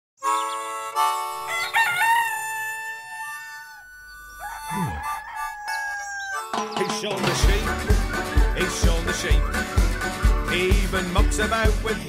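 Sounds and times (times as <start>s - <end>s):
rooster crowing: 1.4s - 6.6s.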